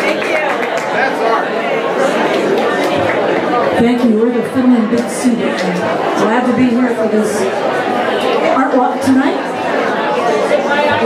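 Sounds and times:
chatter of voices: 0.0 - 11.0
woman talking close to microphone: 3.8 - 7.5, 8.5 - 9.5.

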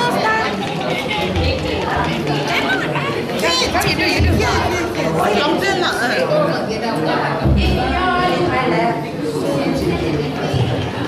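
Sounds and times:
women chattering: 0.0 - 11.0.

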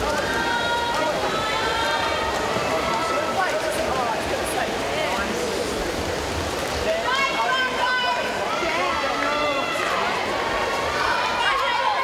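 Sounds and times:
swimming pool hall noise: 0.0 - 12.0.

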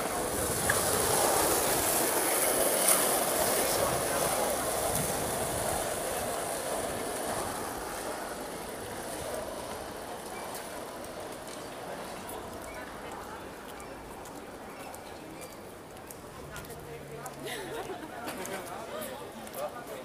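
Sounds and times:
faint voices: 0.0 - 20.0.

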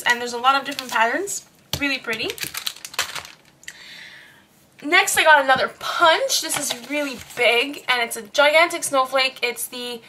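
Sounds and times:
packaging rustling: 0.6 - 1.2, 2.1 - 3.6, 6.5 - 7.5.

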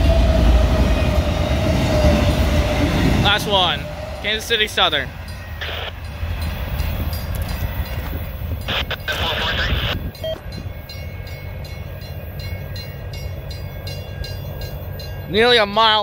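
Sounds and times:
freight train wheels rumbling: 0.0 - 16.0
rush of noise: 5.6 - 6.4, 7.7 - 10.2.

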